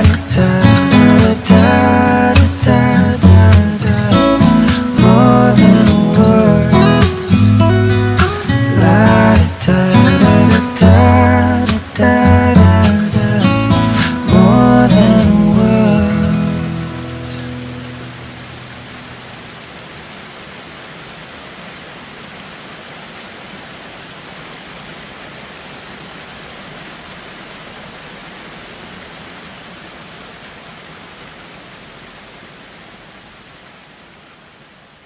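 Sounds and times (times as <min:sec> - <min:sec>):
acoustic guitar chord: 0:00.0 - 0:19.2
waterfall rushing: 0:00.0 - 0:34.7.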